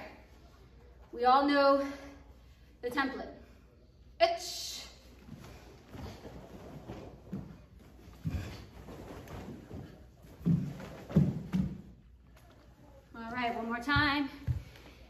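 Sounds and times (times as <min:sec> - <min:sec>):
uniforms rustling: 0:05.1 - 0:15.0
bare feet thudding on wooden floor: 0:06.0 - 0:12.0.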